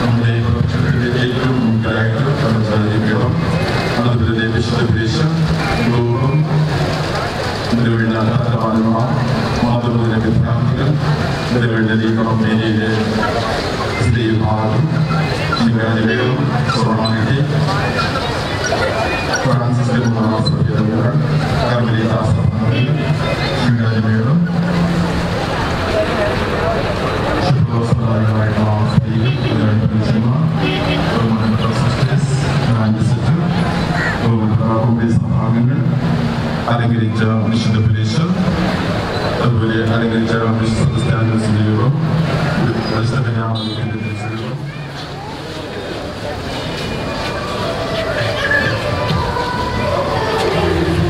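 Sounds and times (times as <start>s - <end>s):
man singing through loudspeaker: 0.0s - 6.7s, 13.9s - 18.0s, 19.3s - 24.8s, 27.4s - 36.0s, 36.6s - 38.6s, 39.4s - 44.8s, 47.9s - 51.0s
dense crowd talking: 0.0s - 51.0s.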